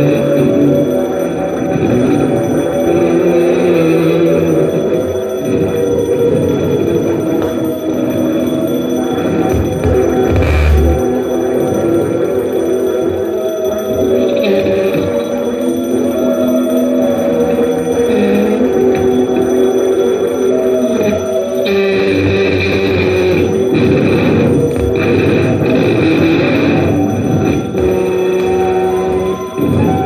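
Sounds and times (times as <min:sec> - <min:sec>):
electronic drone music: 0:08.0 - 0:11.6, 0:17.1 - 0:30.0.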